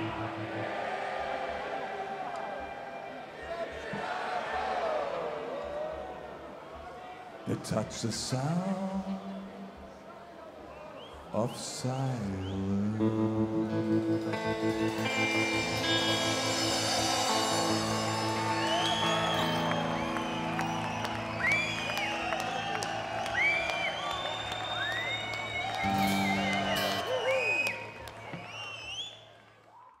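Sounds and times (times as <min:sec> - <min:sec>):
crowd cheering and whistling: 0:00.0 - 0:07.1, 0:10.6 - 0:12.9, 0:13.9 - 0:30.0
live country band playing: 0:12.6 - 0:28.1.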